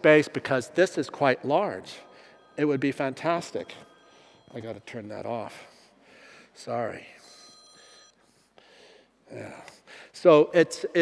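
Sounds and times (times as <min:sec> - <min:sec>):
phone alert chime: 0:01.4 - 0:08.5.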